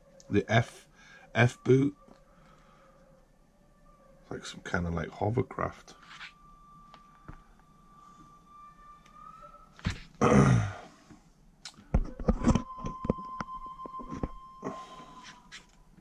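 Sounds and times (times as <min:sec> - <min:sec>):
faint high tone: 0:01.3 - 0:02.2, 0:04.3 - 0:10.8, 0:12.0 - 0:15.8
man clearing throat: 0:10.2 - 0:10.9.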